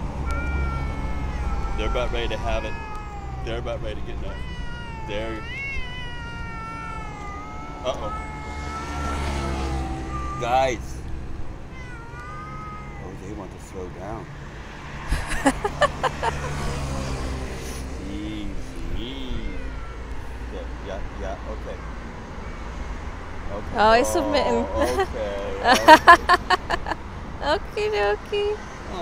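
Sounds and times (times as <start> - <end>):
traffic rumble: 0.0 - 29.0
cat yowling: 0.2 - 11.0, 11.6 - 14.2, 18.9 - 20.8, 21.5 - 26.1.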